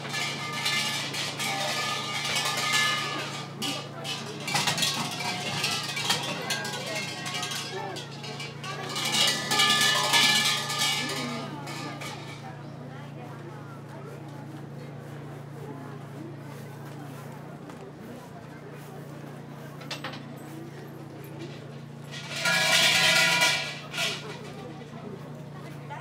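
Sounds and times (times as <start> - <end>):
large bells rattling and jangling: 0.0 - 12.6, 20.4 - 25.4
crowd chatter: 0.0 - 26.0.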